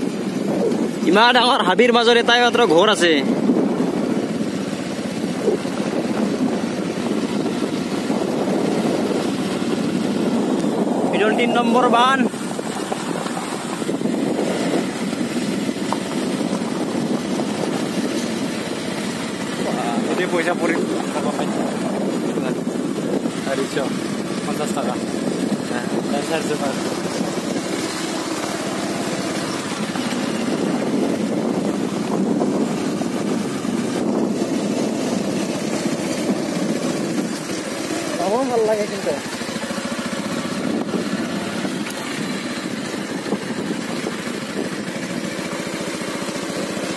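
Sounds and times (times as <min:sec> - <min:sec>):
motorcycle engine running: 0:00.0 - 0:46.9.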